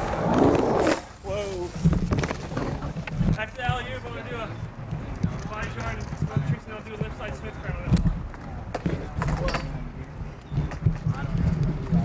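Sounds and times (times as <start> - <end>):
skateboard rumbling on wooden ramp: 0.0 - 12.0.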